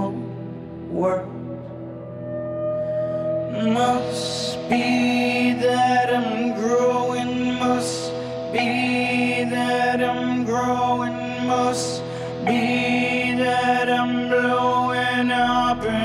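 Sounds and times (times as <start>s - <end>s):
gliding wordless melody: 0.0s - 16.0s
sustained keyboard chords: 0.0s - 16.0s.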